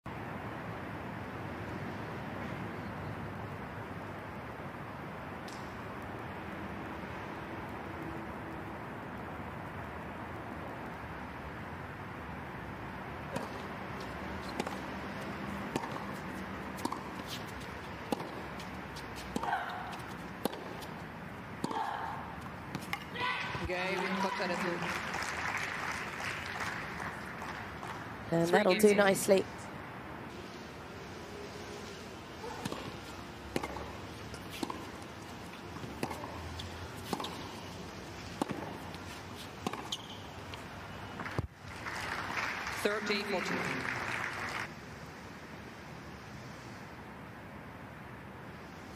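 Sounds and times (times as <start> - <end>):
tennis ball struck by rackets: 13.3 - 21.0, 21.6 - 24.2, 32.4 - 40.6.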